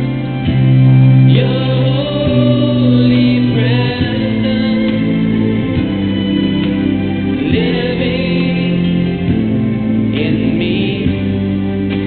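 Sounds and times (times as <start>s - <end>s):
sustained accompaniment: 0.0s - 12.0s
voices singing a hymn: 0.0s - 12.0s.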